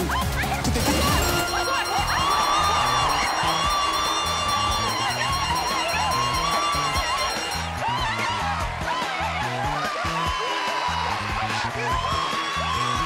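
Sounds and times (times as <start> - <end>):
upbeat game show music: 0.0 - 13.0.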